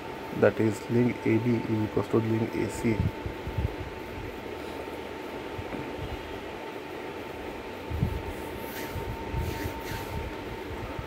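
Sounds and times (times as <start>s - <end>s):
hiss: 8.3s - 10.2s.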